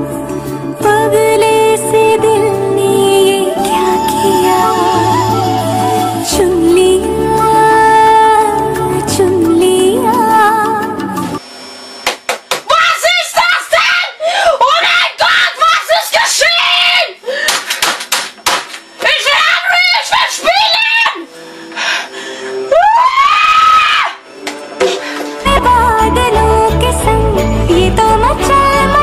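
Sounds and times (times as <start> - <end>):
pop song: 0.0 - 11.4, 25.3 - 29.0
boy screaming and shouting: 12.7 - 17.2, 19.1 - 21.3
slaps on keyboard and desk: 17.5 - 18.8.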